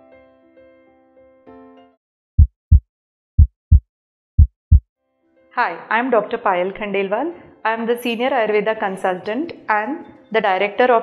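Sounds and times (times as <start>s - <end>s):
heartbeat thuds: 2.4s - 2.8s, 3.4s - 3.8s, 4.4s - 4.8s.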